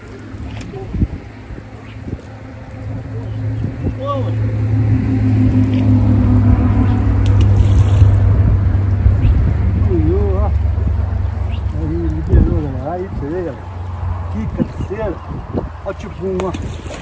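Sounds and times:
engine running: 0.0s - 15.2s.

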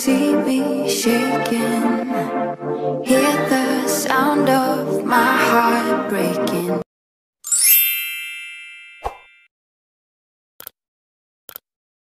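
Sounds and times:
bright sparkling chime: 7.4s - 9.5s.

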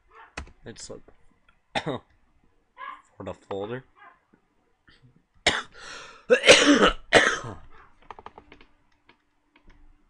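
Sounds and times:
person coughing: 5.5s - 7.7s.

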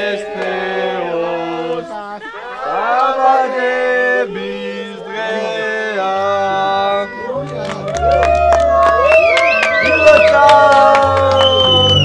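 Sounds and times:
group singing a birthday song: 0.0s - 7.6s, 9.8s - 12.0s.

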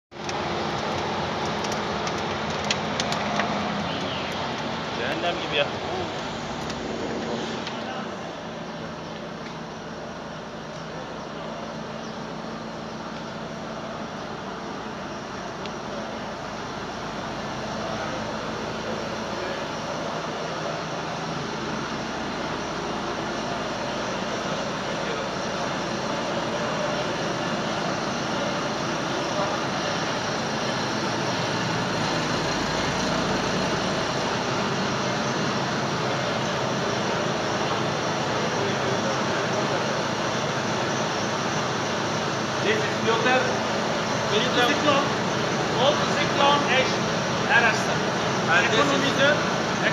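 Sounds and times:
boiler plant machinery rushing: 0.1s - 49.9s.

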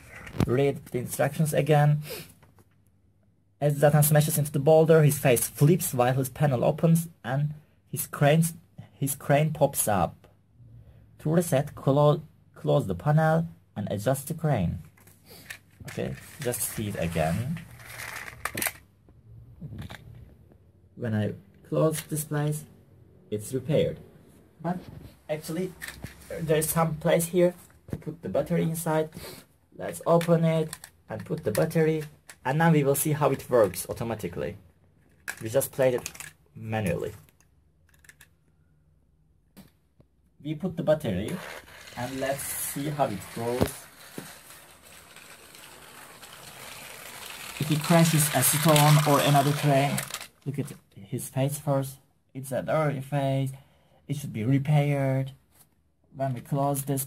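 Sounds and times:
toy engine plastic clicks: 17.7s - 18.8s, 30.2s - 31.7s, 37.3s - 38.3s, 41.4s - 50.5s.

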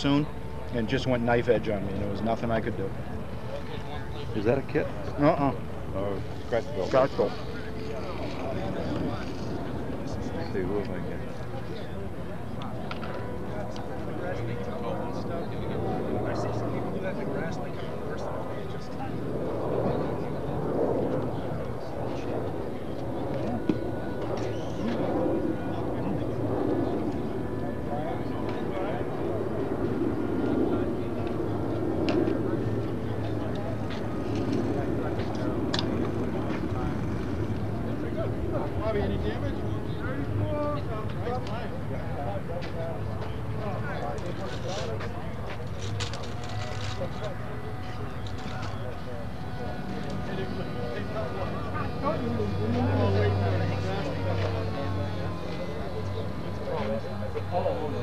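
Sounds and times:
model airplane engine: 0.0s - 58.0s
people chattering: 0.0s - 58.0s.

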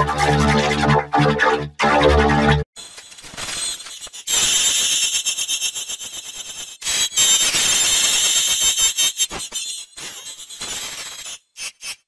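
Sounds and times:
shrill electronic screech: 4.2s - 12.0s.

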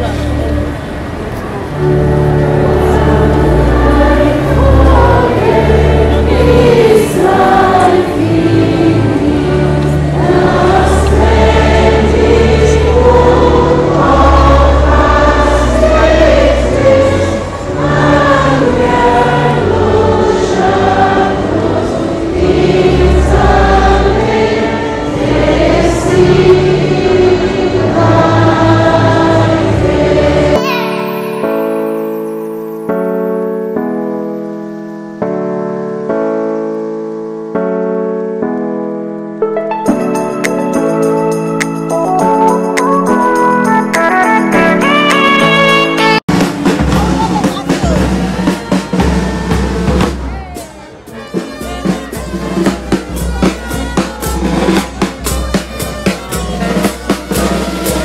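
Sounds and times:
girls choir singing a hymn: 0.0s - 32.4s
sustained accompaniment notes: 0.0s - 37.7s, 38.4s - 58.0s.

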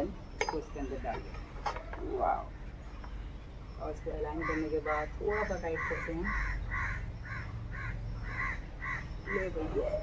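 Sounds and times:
bird calling: 0.0s - 10.0s.

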